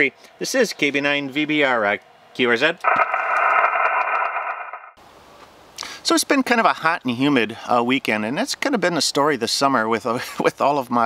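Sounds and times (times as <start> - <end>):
radio static hiss: 2.8 - 5.0.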